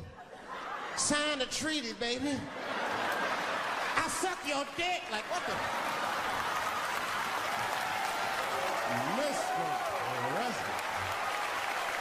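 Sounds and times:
audience applauding: 2.8 - 12.0.

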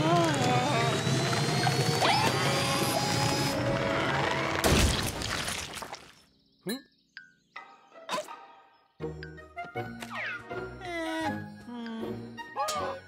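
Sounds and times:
cartoon music: 9.1 - 13.0.

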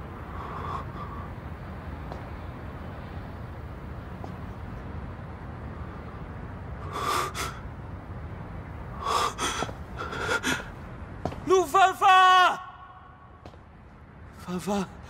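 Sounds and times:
low background hum: 0.0 - 15.0
young man loud drawn-out call: 11.5 - 13.3.

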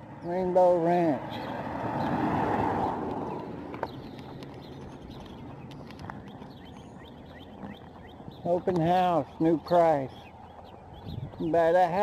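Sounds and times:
bicycle wind and rolling noise: 0.0 - 12.0.

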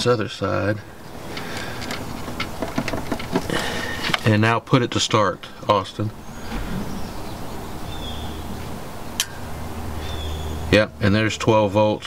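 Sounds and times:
steady background hiss: 0.0 - 12.0
test probes clicking and scraping: 1.3 - 4.3.

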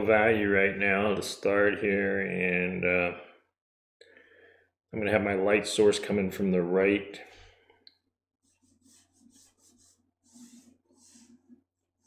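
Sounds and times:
brush strokes on paper: 8.4 - 12.0.

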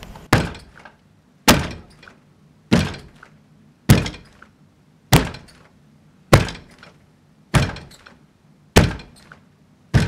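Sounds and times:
heavy pounding thuds: 0.3 - 0.8, 1.5 - 1.9, 2.7 - 3.2, 3.9 - 4.3, 5.1 - 5.6, 6.3 - 6.8, 7.5 - 8.0, 8.8 - 9.2.

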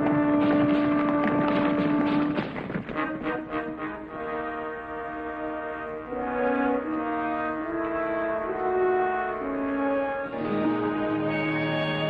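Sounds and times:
film score melody with held chords: 3.4 - 12.0.

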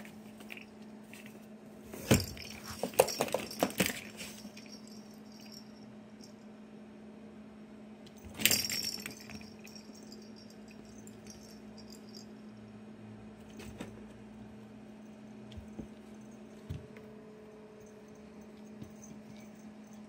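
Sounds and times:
toy balls rattling in cardboard box: 2.0 - 5.5, 8.3 - 10.1.

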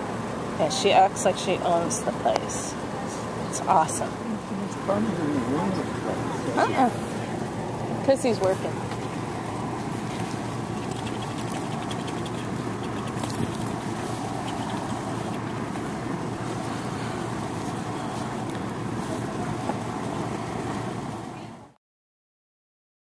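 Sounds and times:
large fan whirring: 0.0 - 21.8.

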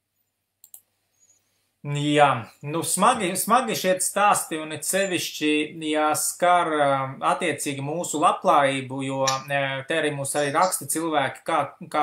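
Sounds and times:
computer mouse clicks: 0.6 - 1.3
man speaking: 1.8 - 12.0.

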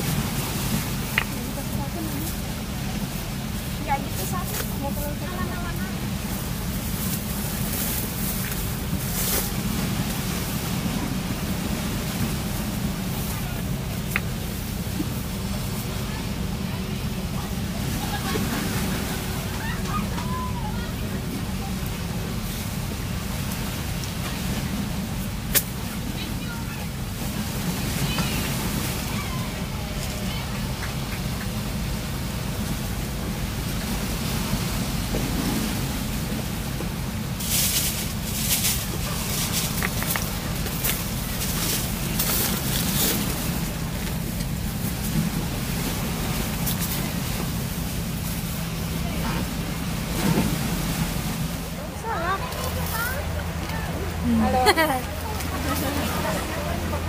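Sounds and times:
low rushing background noise: 0.0 - 57.0
faint indistinct voices: 48.5 - 57.0.

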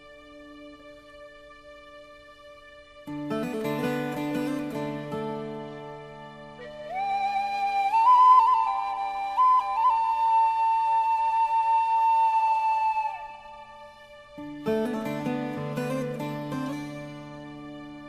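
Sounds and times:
flute melody: 3.1 - 18.0.

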